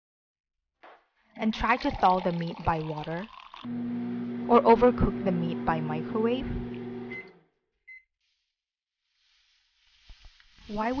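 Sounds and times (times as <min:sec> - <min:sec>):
microwave oven beep: 0:03.8 - 0:08.1.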